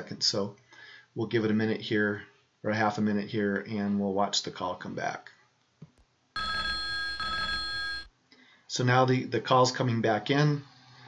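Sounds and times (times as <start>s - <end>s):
electronic ringtone: 6.4s - 8.1s.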